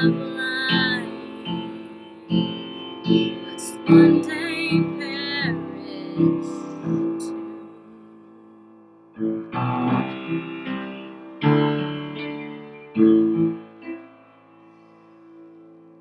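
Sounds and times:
piano chords ringing: 0.0s - 16.0s.

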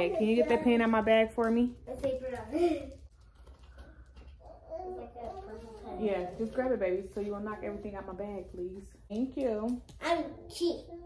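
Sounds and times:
rustling: 2.1s - 9.6s.

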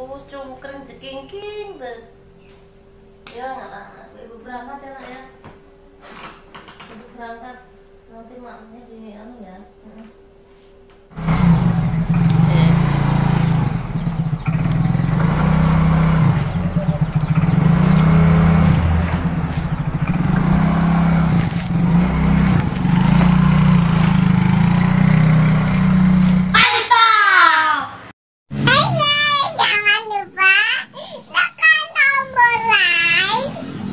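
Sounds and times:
scooter engine revving: 11.1s - 26.6s, 28.5s - 33.9s.

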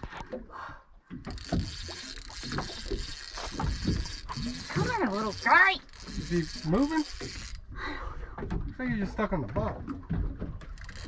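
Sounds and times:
water slapping against boat hull: 1.0s - 7.4s, 8.2s - 11.0s.

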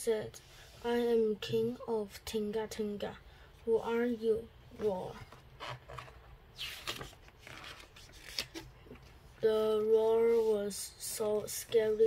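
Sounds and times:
paper page rustle: 5.3s - 9.2s.

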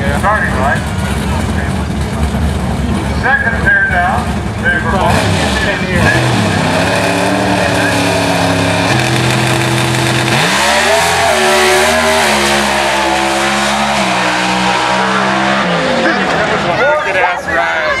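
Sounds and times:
drag car engine accelerating: 0.0s - 17.8s.

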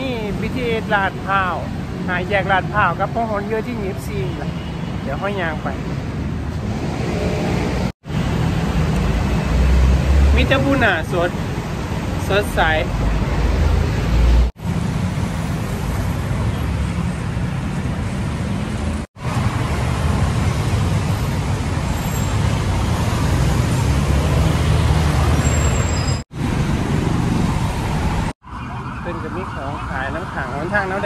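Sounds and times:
cars passing on busy street: 0.0s - 31.0s.

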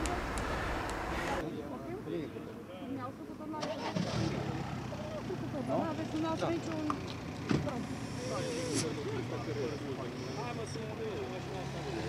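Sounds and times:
indistinct talk: 1.1s - 12.0s
car engine running: 4.0s - 11.9s.

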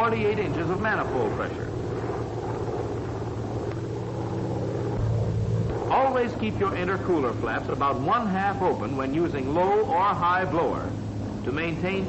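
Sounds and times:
propeller plane engine droning: 0.0s - 12.0s.

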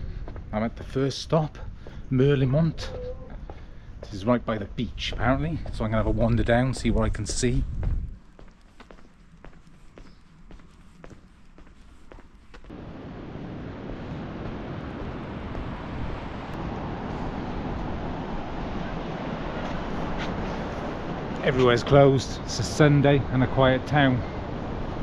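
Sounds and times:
quiet street ambience: 0.0s - 25.0s
footsteps on pavement: 2.8s - 4.2s, 5.0s - 12.8s
steady rushing noise: 12.4s - 25.0s.

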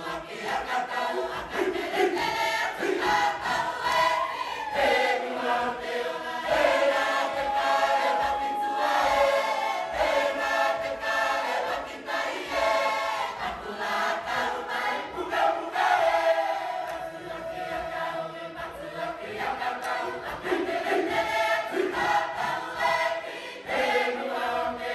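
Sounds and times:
choir singing unaccompanied: 0.0s - 24.9s.

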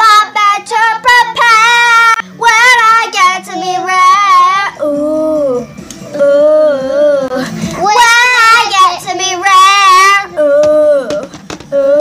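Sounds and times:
young girl singing: 0.0s - 12.0s.

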